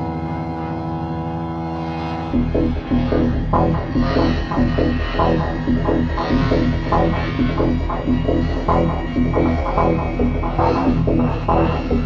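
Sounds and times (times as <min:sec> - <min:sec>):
low throbbing electronic drone: 0:00.0 - 0:12.0
sequenced short pitched synth notes: 0:02.4 - 0:12.0.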